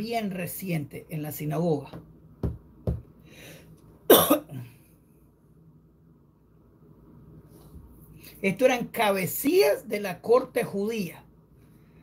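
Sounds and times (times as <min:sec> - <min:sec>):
man breathing in: 0:03.2 - 0:03.8
man coughing: 0:04.1 - 0:04.7.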